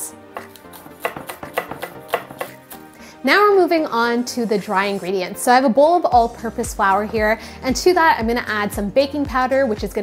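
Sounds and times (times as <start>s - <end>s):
background music: 0.0s - 10.0s
knife chopping on wooden board: 0.4s - 2.8s.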